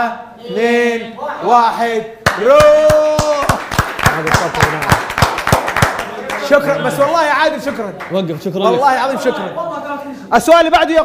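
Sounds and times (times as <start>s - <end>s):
hands clapping in rhythm: 2.2s - 6.6s.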